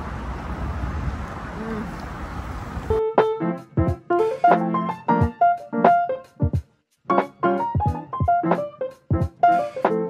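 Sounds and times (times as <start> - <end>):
outdoor background noise: 0.0 - 3.0
piano-like keyboard music: 2.9 - 10.0.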